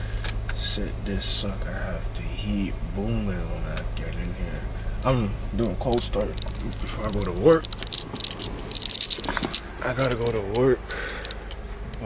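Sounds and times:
car engine idling: 0.0 - 12.0
clicking and rustling handling: 5.6 - 12.0.

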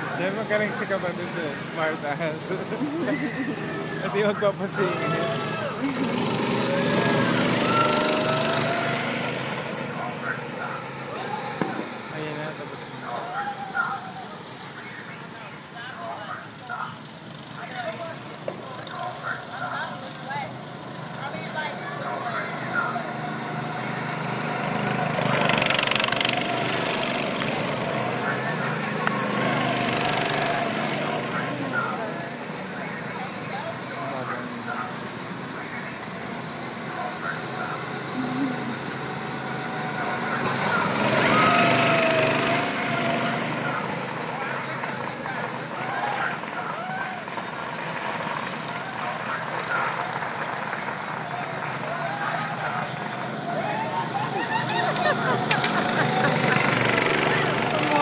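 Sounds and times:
go-kart engines passing: 0.0 - 58.0.

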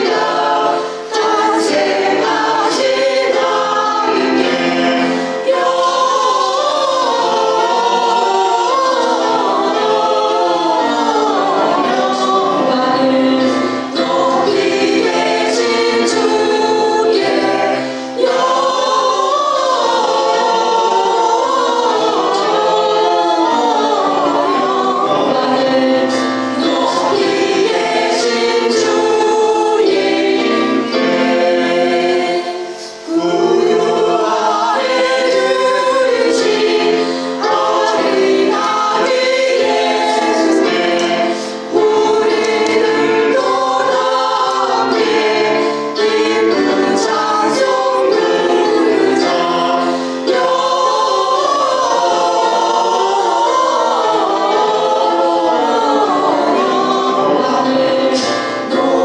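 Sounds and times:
women singing carol in harmony: 0.0 - 59.0.

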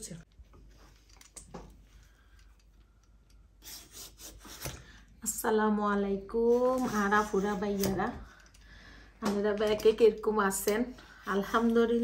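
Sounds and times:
vegetable peeler scraping fruit skin: 3.6 - 4.9.

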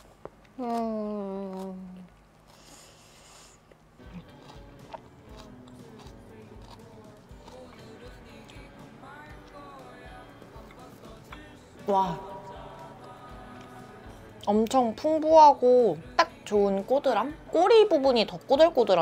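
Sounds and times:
woman humming while chewing: 0.5 - 2.3, 4.0 - 9.8
background music with light beat: 4.0 - 19.0.

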